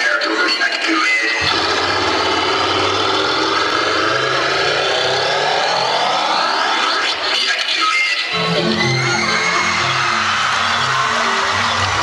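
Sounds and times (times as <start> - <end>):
engine-like sound effect: 1.4 - 12.0
rising whine: 1.4 - 12.0.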